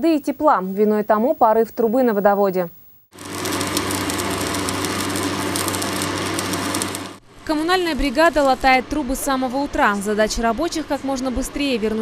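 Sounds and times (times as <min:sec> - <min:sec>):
arc welding crackling sizzle: 0:02.8 - 0:10.4.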